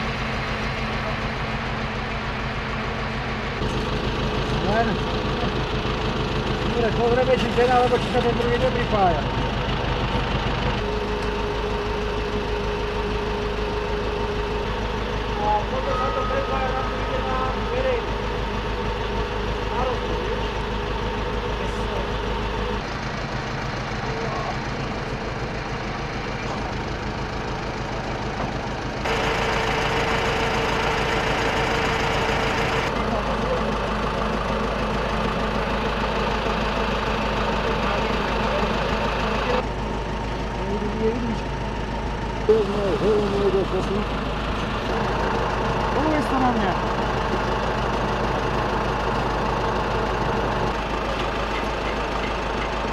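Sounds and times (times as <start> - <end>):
truck engine idling: 0.0 - 52.9
people talking: 4.6 - 5.5, 6.7 - 9.3, 15.4 - 18.2, 19.7 - 20.3, 21.6 - 22.2, 32.9 - 33.9, 37.6 - 39.6, 40.6 - 41.5, 42.5 - 44.1, 46.0 - 46.8.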